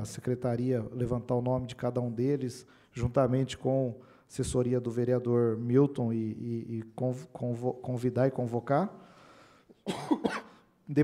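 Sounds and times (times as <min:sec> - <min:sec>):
man speaking: 0:00.0 - 0:09.0
man coughing: 0:09.8 - 0:10.6.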